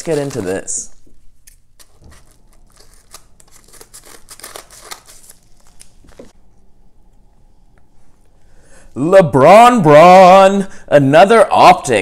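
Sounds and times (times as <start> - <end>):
scissors snipping paper envelope: 0.0 - 0.7, 1.4 - 6.3.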